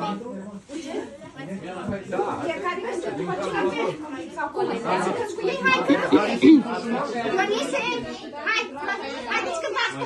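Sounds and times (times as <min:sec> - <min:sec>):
people talking over one another: 0:04.7 - 0:08.4.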